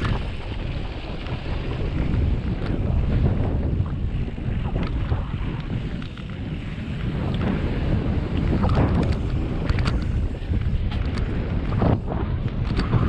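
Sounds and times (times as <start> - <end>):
bike clicks and rattles: 0.0 - 13.0
bike tyres rolling on dirt: 0.0 - 13.0
wind buffeting microphone: 0.0 - 13.0.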